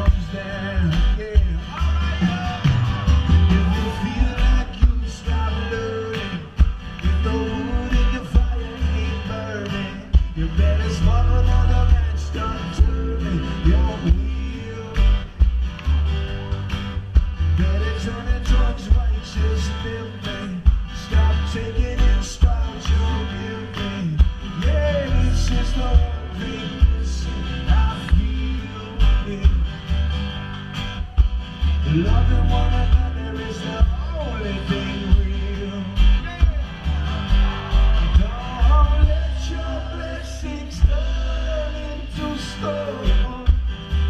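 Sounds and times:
drum beat: 0:00.0 - 0:05.5, 0:06.2 - 0:08.8, 0:17.1 - 0:17.8, 0:20.7 - 0:27.1, 0:31.0 - 0:31.7, 0:36.2 - 0:39.5, 0:40.7 - 0:41.2
lead singer singing: 0:00.0 - 0:15.5, 0:17.4 - 0:30.0, 0:30.9 - 0:44.0
guitar: 0:00.0 - 0:44.0
heavy bass: 0:00.0 - 0:44.0.

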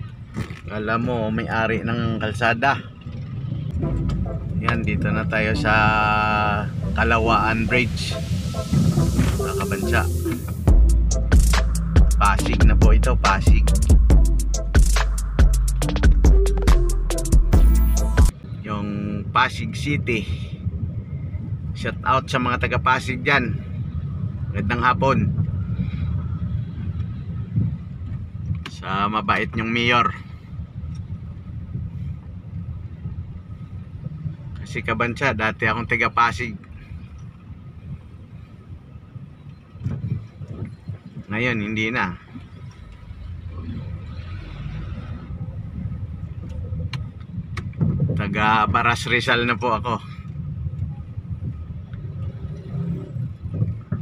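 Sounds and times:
car engine and tyres rumbling: 0:00.0 - 0:54.0.

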